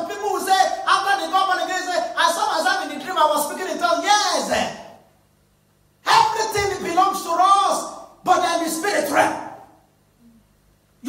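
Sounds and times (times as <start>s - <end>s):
man speaking into a microphone: 0.0s - 4.9s, 6.0s - 9.6s.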